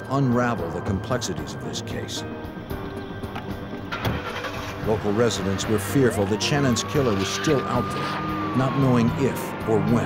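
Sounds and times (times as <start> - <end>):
background music: 0.0 - 10.0
car engine starting: 2.4 - 10.0
car door shutting: 2.9 - 4.8.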